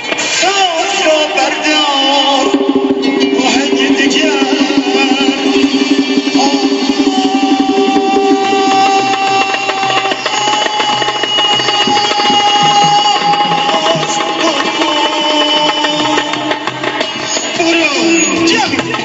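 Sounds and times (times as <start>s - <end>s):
man singing into a microphone: 0.0s - 19.0s
frame drum strokes: 2.2s - 19.0s.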